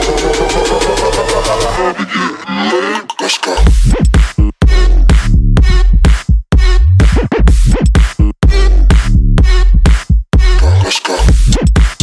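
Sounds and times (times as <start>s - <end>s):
gritty bass drone: 0.0s - 11.7s
techno music: 0.0s - 12.0s.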